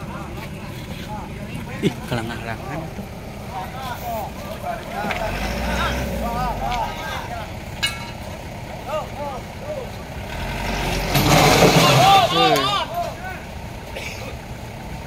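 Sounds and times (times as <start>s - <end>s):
people chattering: 0.0s - 10.3s, 11.3s - 14.5s
tow truck engine rumbling: 0.0s - 15.0s.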